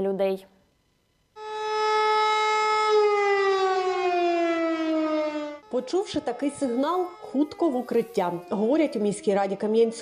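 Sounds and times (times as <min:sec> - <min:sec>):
air-raid siren: 0:01.4 - 0:10.0.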